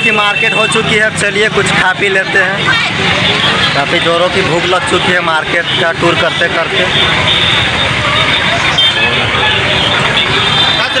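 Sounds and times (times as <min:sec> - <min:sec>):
many people talking: 0:00.0 - 0:11.0
road traffic: 0:00.0 - 0:11.0.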